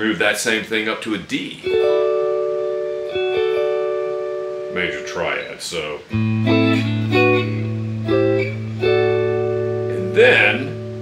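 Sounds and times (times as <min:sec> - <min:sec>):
electric guitar arpeggio: 0:01.6 - 0:11.0.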